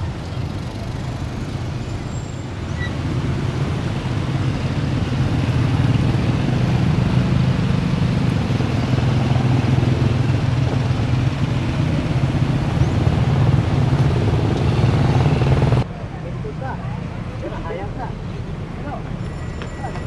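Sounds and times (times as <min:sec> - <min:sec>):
motorcycles passing: 0:00.0 - 0:20.0.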